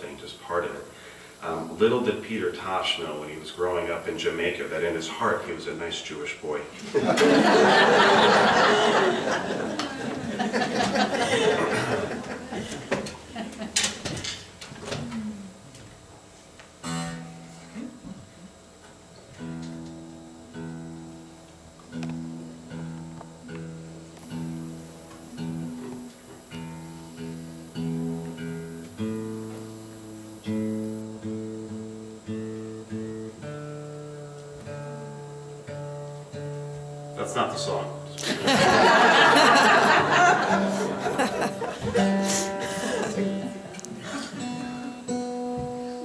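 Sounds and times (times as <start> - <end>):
acoustic guitar being tuned: 0.0 - 46.0.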